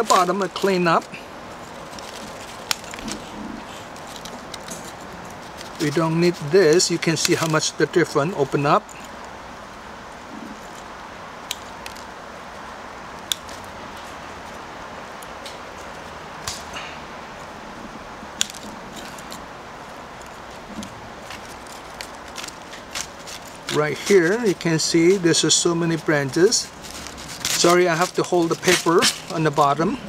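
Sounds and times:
steady background hiss: 0.0 - 30.0.

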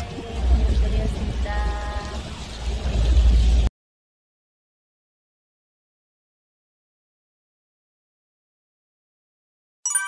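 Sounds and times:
woman saying bye: 0.0 - 2.2
boat engine rumble: 0.0 - 3.7.

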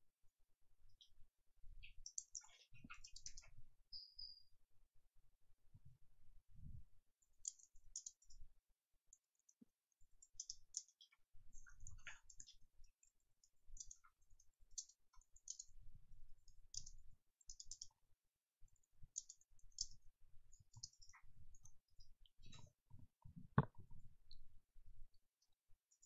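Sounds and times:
keyboard typing: 1.8 - 4.4, 7.4 - 8.4, 10.2 - 15.8, 16.4 - 17.9, 18.8 - 22.6.

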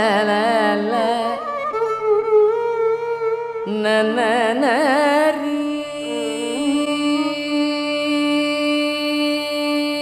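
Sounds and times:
tanpura drone: 0.0 - 10.0
violin: 0.0 - 10.0.

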